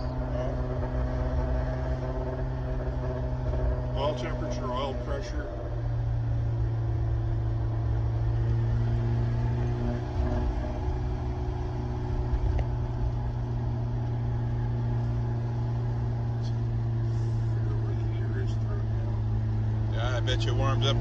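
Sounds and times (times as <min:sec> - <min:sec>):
car engine drone from inside: 0:00.0 - 0:21.0
road noise: 0:00.0 - 0:21.0.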